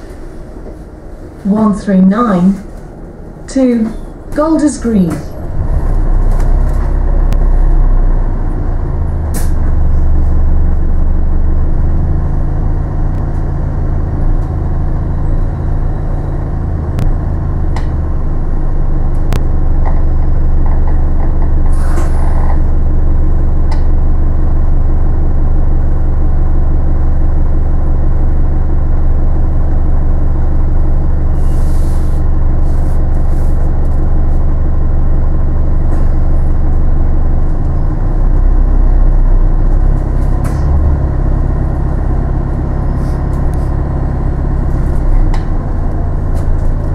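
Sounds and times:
bus engine drone: 0:00.0 - 0:46.9
air brake hisses: 0:21.7 - 0:22.2, 0:31.4 - 0:32.2.

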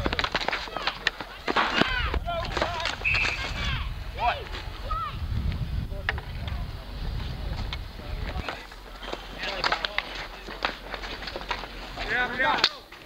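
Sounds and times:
hockey sticks clacking on asphalt: 0:00.0 - 0:04.7, 0:05.5 - 0:13.0
players calling out: 0:00.0 - 0:05.2, 0:08.2 - 0:12.9.

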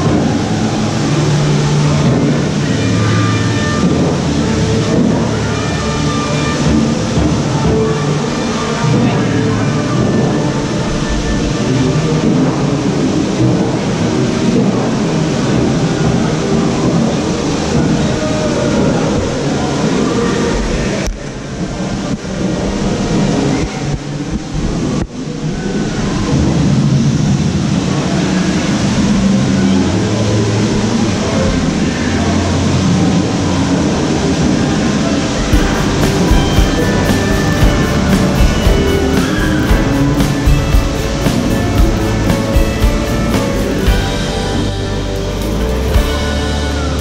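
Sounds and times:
loud mechanical rumble with rattling: 0:26.2 - 0:47.0.

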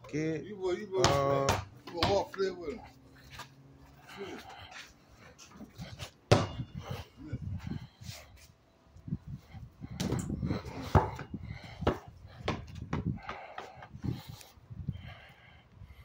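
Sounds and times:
rumbling handling noise: 0:09.2 - 0:14.6.

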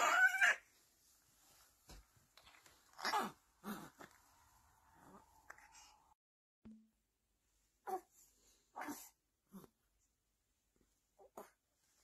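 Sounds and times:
baby cooing: 0:00.0 - 0:00.6, 0:02.9 - 0:04.2, 0:08.8 - 0:09.7.

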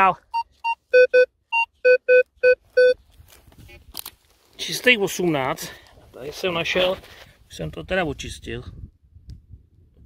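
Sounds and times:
metal detector beeps: 0:00.3 - 0:03.0.

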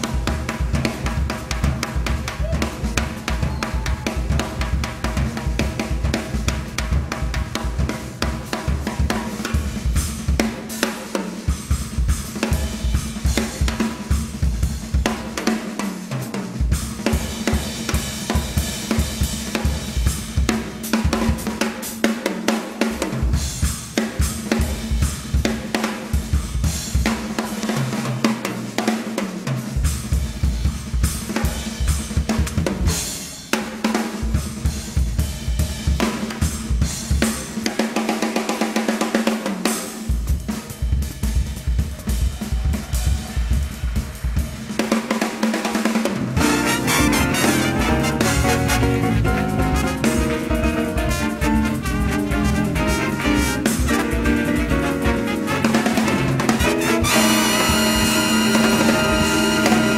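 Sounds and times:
cymbals and hi-hat: 0:00.0 - 0:59.9
snare and tom strokes: 0:42.9 - 0:59.9.

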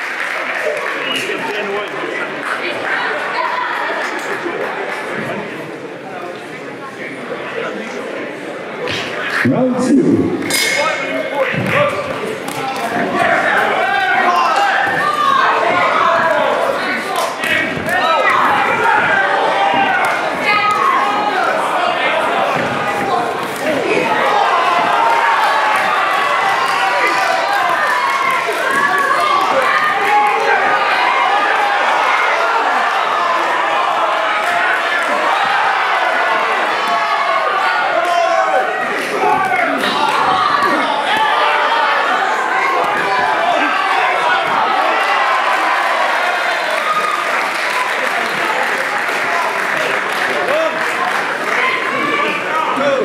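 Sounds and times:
crowd shouting and cheering: 0:00.0 - 0:53.0.

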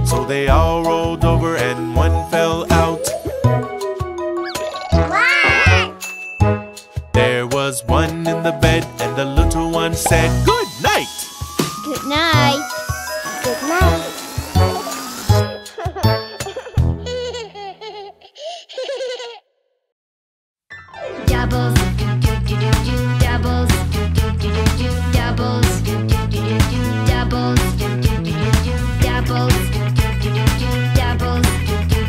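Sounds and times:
children's song backing music: 0:00.0 - 0:06.2, 0:06.8 - 0:14.2, 0:21.2 - 0:32.0
song music starting: 0:00.1 - 0:05.1, 0:07.9 - 0:16.3, 0:20.8 - 0:22.7
cartoon rising and falling glide: 0:02.3 - 0:05.9, 0:12.3 - 0:15.7
high childlike giggling: 0:02.8 - 0:05.9, 0:13.2 - 0:19.4.

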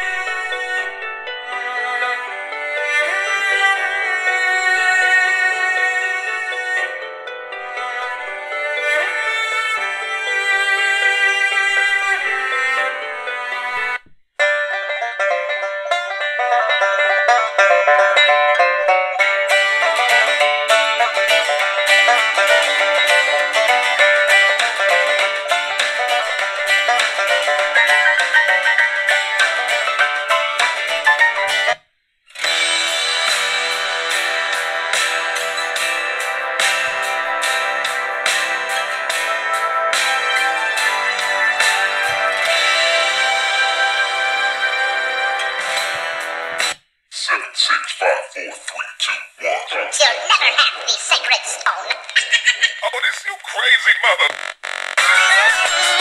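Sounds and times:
banjo country-folk tune: 0:00.0 - 0:31.8, 0:32.4 - 0:48.8, 0:55.0 - 0:56.0
cello piece on radio: 0:00.0 - 0:48.7, 0:52.6 - 0:56.0
rock track with guitar: 0:19.2 - 0:31.8, 0:32.4 - 0:46.8.

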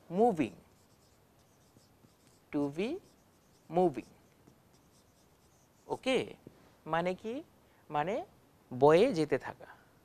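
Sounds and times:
marker writing on whiteboard: 0:00.4 - 0:06.3.

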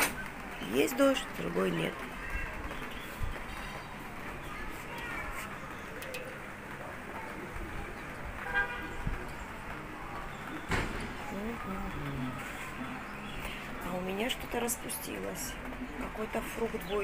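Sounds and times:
distant voices: 0:00.0 - 0:17.0.

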